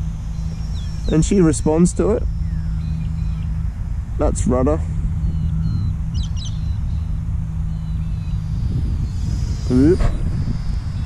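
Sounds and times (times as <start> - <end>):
bird chirps: 0.0 - 11.0
steady low hum: 0.0 - 11.0
wind rumble on microphone: 0.0 - 11.0.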